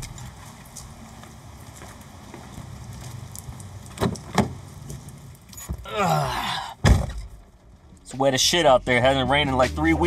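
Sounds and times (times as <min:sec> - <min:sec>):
footsteps on wet path: 0:00.0 - 0:05.3.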